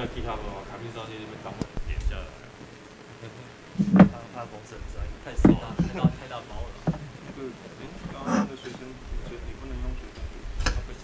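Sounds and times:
faint indistinct voices: 0.0 - 11.0
low thumps: 3.7 - 11.0.

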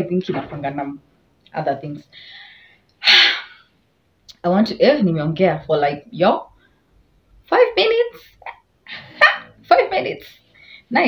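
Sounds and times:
woman breathing in: 2.1 - 3.6
forceful burst of breath: 2.2 - 3.7.

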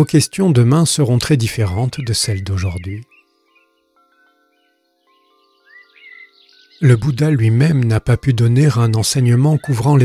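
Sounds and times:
ambient music with drone and chimes: 0.0 - 10.0
bird chirps: 0.1 - 10.0.

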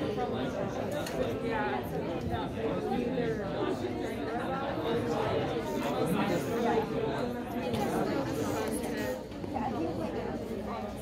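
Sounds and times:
hubbub of many voices: 0.0 - 11.0.

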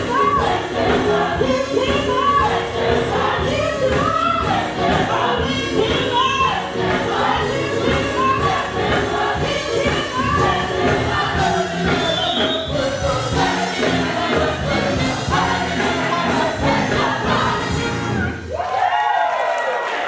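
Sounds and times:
drums keeping a steady beat: 0.0 - 18.3
gospel choir singing: 0.0 - 18.4
live band playing: 0.0 - 18.5.

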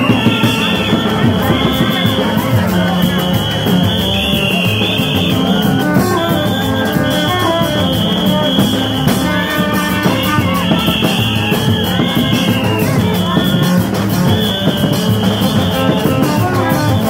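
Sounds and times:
band playing loudly: 0.0 - 17.0
drums beaten with sticks: 0.0 - 17.0.

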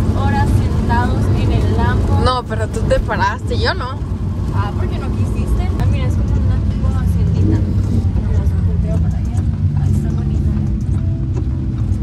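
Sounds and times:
car engine and tyre drone: 0.0 - 12.0.

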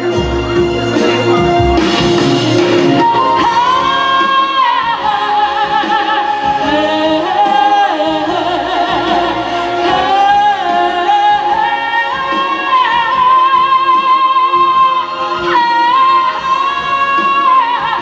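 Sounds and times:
woman singing a ballad: 3.0 - 18.0.

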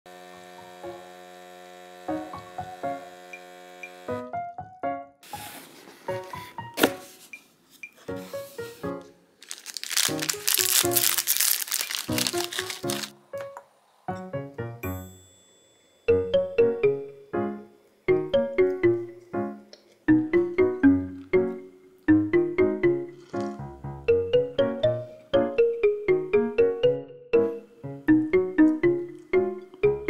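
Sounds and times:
soft piano music: 2.1 - 3.2, 4.1 - 7.4, 8.0 - 30.0
plastic wrappers crinkling: 9.4 - 13.1.

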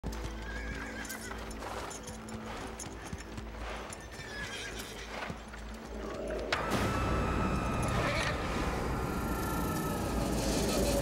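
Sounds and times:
horse hooves clip-clopping: 0.0 - 6.9
background music: 0.0 - 11.0
horse whinnying: 0.4 - 1.4, 4.0 - 5.4.

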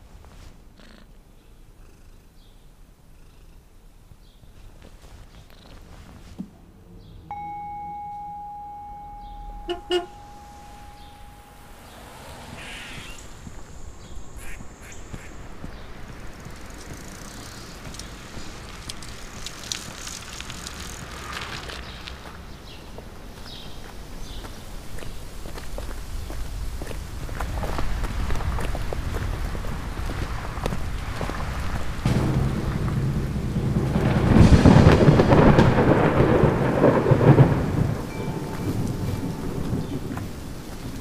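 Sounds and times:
low street rumble: 0.0 - 41.0
cat purring: 0.8 - 4.0
steady high tone: 7.3 - 13.4, 32.1 - 35.3, 38.1 - 39.8
tyre hiss on wet street: 11.7 - 32.1, 34.4 - 41.0
bicycle clicking: 16.1 - 22.2.

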